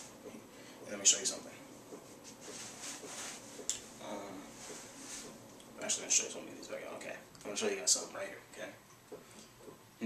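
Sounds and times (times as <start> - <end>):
hands rustling props: 2.0 - 5.4.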